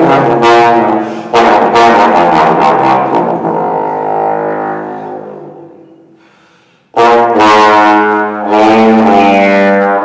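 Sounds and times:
bass trombone low note: 0:00.0 - 0:06.2, 0:06.9 - 0:10.0.

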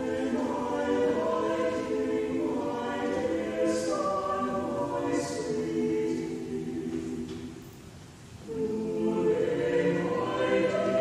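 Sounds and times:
choir singing: 0:00.0 - 0:07.6, 0:08.4 - 0:11.0.

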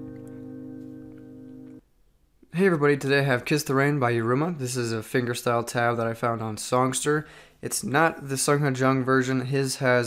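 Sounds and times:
fingerpicked acoustic guitar chord: 0:00.0 - 0:01.8.

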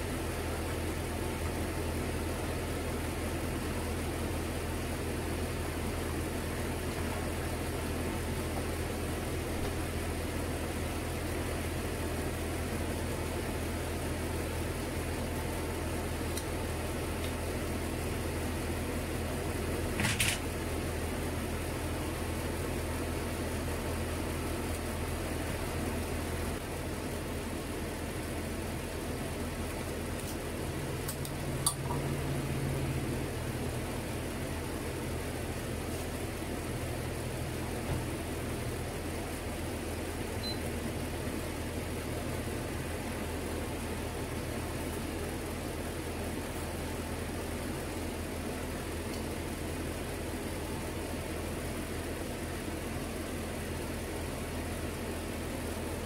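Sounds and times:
kitchen fan humming: 0:00.0 - 0:56.0.

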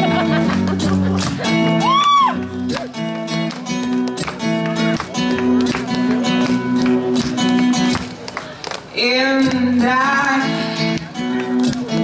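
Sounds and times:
acoustic guitar strumming: 0:00.0 - 0:08.2, 0:08.9 - 0:12.0
person singing: 0:08.9 - 0:12.0.

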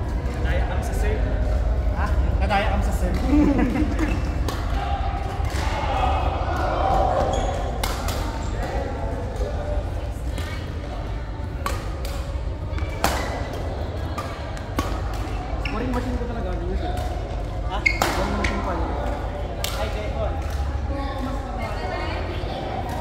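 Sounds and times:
racket hitting shuttlecock: 0:11.6 - 0:13.6, 0:14.2 - 0:15.4.

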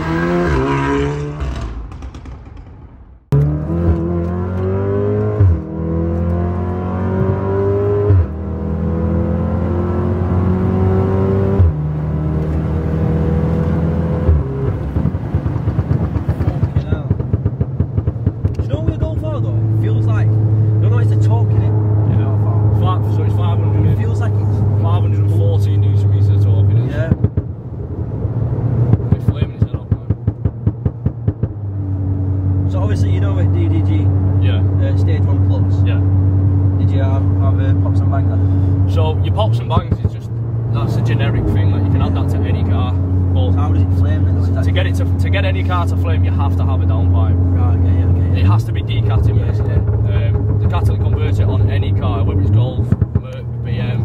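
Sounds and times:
car engine accelerating with gear changes: 0:00.0 - 0:02.6, 0:03.3 - 0:54.0.

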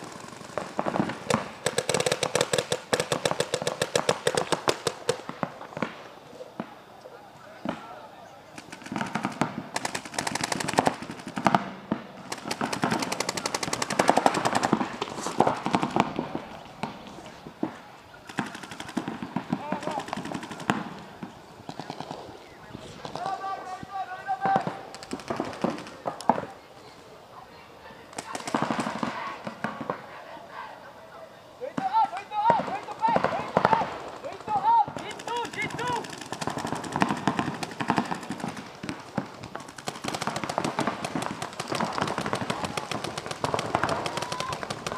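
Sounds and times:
paintball markers firing: 0:00.0 - 0:06.7, 0:08.6 - 0:22.3, 0:31.8 - 0:44.9
players shouting: 0:12.1 - 0:26.6, 0:27.7 - 0:39.2, 0:40.2 - 0:44.9.

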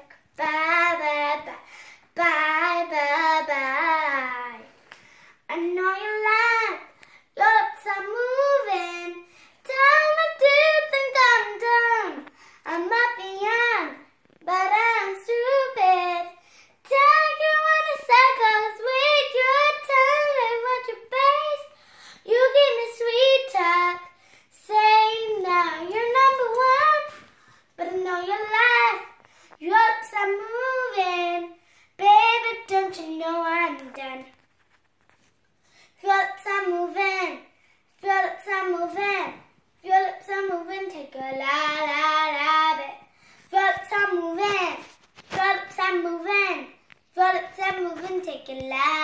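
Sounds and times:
girl singing unaccompanied: 0:00.0 - 0:34.6, 0:35.7 - 0:49.0.

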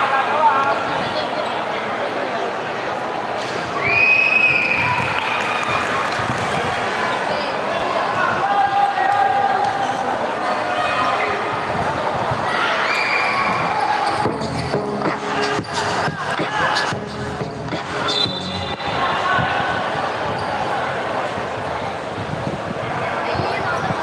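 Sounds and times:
echoing crowd voices: 0:00.0 - 0:24.0.

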